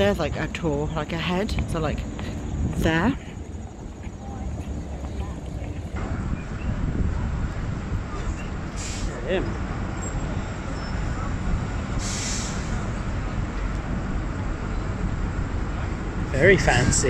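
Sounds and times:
traffic rumble: 0:00.0 - 0:17.0
short hiss: 0:08.8 - 0:09.2, 0:12.0 - 0:12.8.

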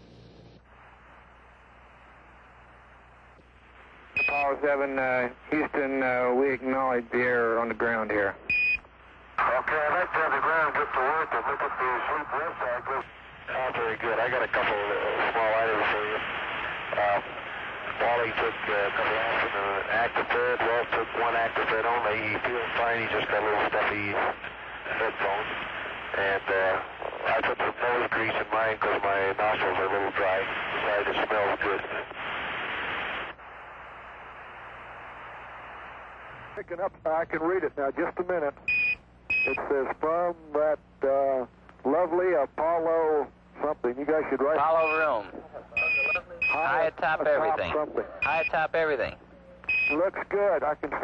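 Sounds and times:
man talking over radio: 0:04.3 - 0:08.4, 0:09.4 - 0:16.3, 0:16.9 - 0:32.1, 0:36.6 - 0:38.6, 0:39.5 - 0:49.3, 0:49.9 - 0:51.0.

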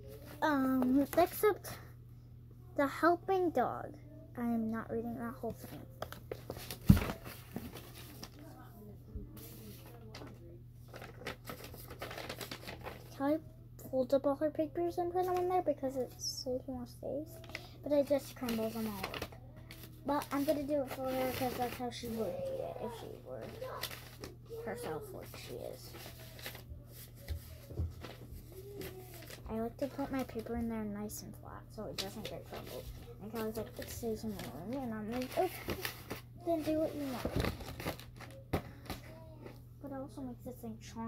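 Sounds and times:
paper rustling and shuffling: 0:00.1 - 0:01.8, 0:05.4 - 0:13.4, 0:15.2 - 0:16.4, 0:17.3 - 0:30.7, 0:31.8 - 0:39.6.

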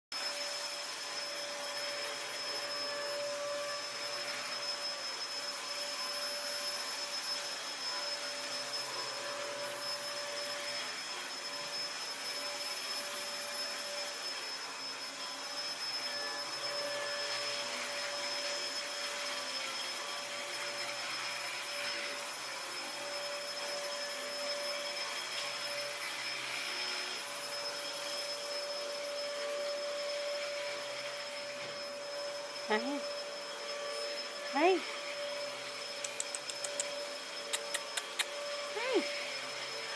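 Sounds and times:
vacuum cleaner running on carpet: 0:00.2 - 0:39.9.

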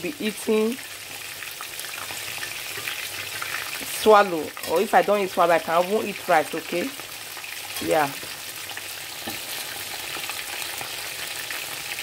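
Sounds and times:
fish frying in oil: 0:00.0 - 0:12.0.

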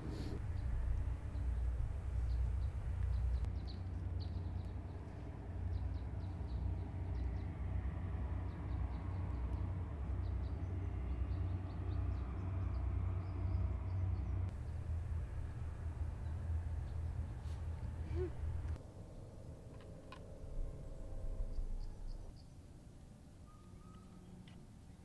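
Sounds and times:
steady low rumble: 0:00.0 - 0:22.5.

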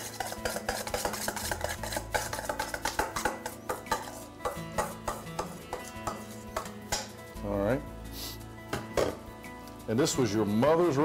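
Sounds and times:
utensil scraping metal bowl: 0:00.0 - 0:06.8
background music: 0:00.0 - 0:11.0.

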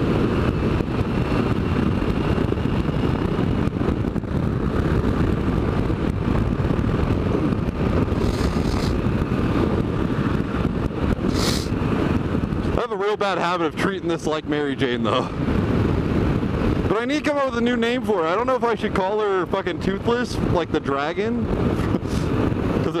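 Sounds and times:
motorcycle engine and road noise: 0:00.0 - 0:23.0
wind rushing over microphone: 0:00.0 - 0:23.0
short hisses: 0:08.2 - 0:09.0, 0:11.3 - 0:11.8.

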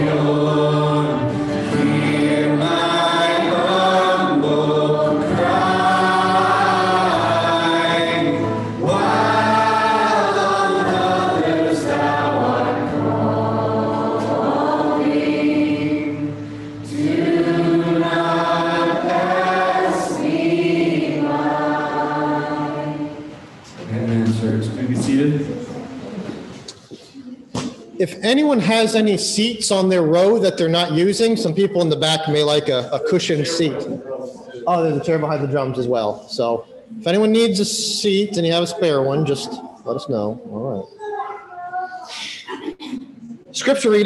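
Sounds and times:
congregation singing a hymn: 0:00.0 - 0:26.6, 0:36.7 - 0:40.4
acoustic guitar: 0:00.0 - 0:29.0.

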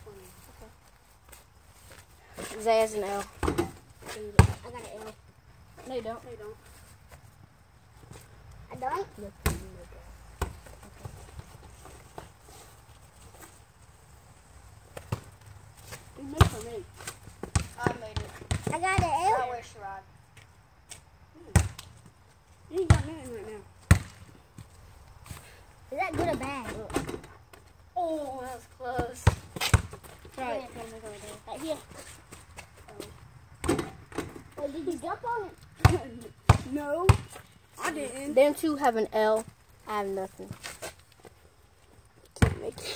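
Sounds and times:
basketball bouncing on hard ground: 0:02.4 - 0:05.2, 0:09.3 - 0:12.4, 0:14.9 - 0:19.6, 0:21.4 - 0:25.4, 0:28.9 - 0:34.7, 0:35.7 - 0:37.9, 0:42.4 - 0:42.9
children's voices: 0:34.6 - 0:37.2.

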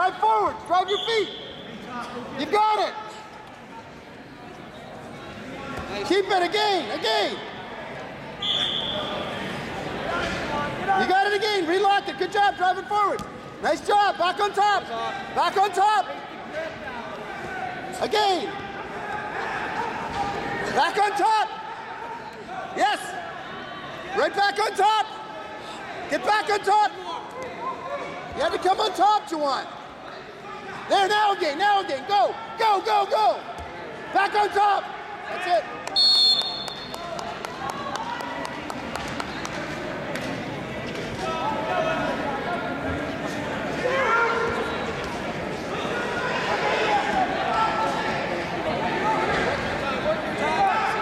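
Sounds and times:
murmur of people in a hall: 0:00.0 - 0:51.0
referee's whistle: 0:00.8 - 0:01.8, 0:08.4 - 0:09.3, 0:36.0 - 0:37.0
loud shouts: 0:30.4 - 0:37.1, 0:43.8 - 0:44.8, 0:50.4 - 0:51.0.

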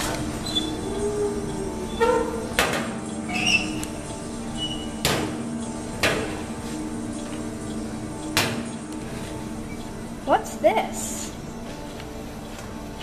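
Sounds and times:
background music drone: 0:00.0 - 0:13.0.

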